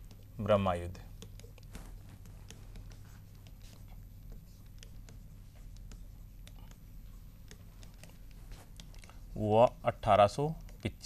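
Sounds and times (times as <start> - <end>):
steady low hum: 0.0 - 11.0
stylus scratching on screen: 0.0 - 11.0.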